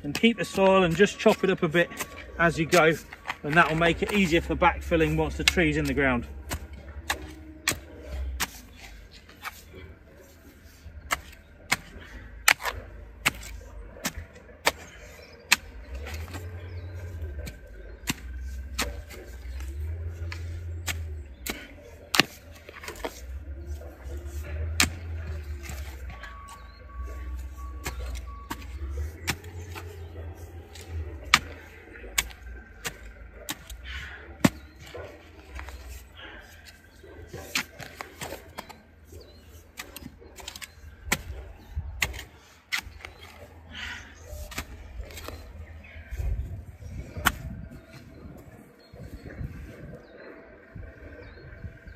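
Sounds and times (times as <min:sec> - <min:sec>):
spade striking and scraping soil: 0:00.0 - 0:48.4.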